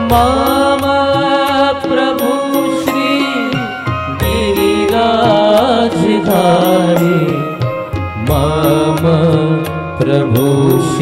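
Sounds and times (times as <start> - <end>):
person singing: 0.0 - 11.0
sustained instrumental tones: 2.0 - 11.0.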